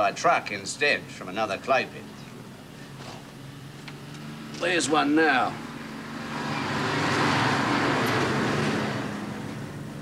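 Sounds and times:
truck driving past: 3.4 - 10.0.

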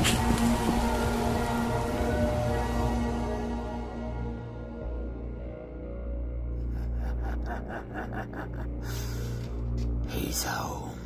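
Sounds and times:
low music drone: 0.0 - 11.0
person laughing rapidly: 6.6 - 9.2.

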